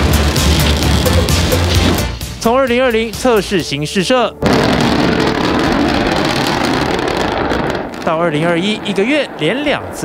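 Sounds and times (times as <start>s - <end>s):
distant explosion blast noise: 4.4s - 10.0s.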